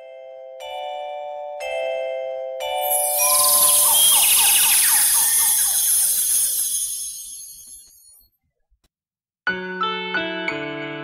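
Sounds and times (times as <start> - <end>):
synthesized shimmer with zaps: 2.8 - 8.1.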